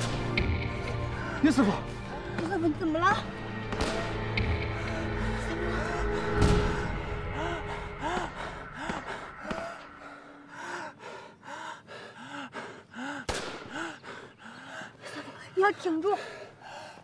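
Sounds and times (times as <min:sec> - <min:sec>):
soft background music: 0:00.0 - 0:10.8.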